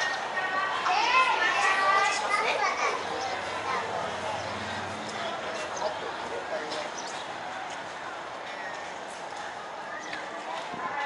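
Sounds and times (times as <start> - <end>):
children calling out: 0.0 - 4.8
crowd chatter: 0.0 - 11.0.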